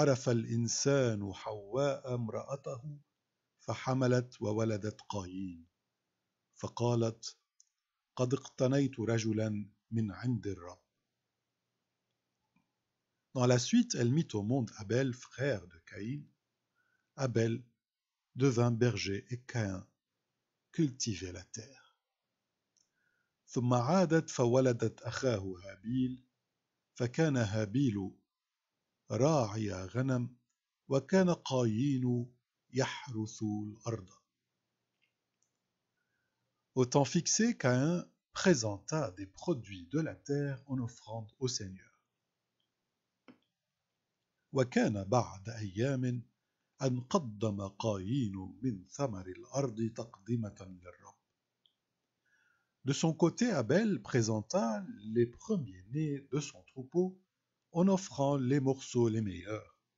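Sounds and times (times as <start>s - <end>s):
person reading aloud: 0.0s - 5.7s, 6.6s - 7.4s, 8.2s - 10.9s, 13.4s - 16.4s, 17.2s - 17.7s, 18.4s - 19.9s, 20.8s - 21.8s, 23.5s - 26.3s, 27.0s - 28.1s, 29.1s - 30.3s, 30.9s - 34.2s, 36.8s - 41.9s, 44.6s - 51.2s, 52.8s - 57.2s, 57.8s - 59.7s.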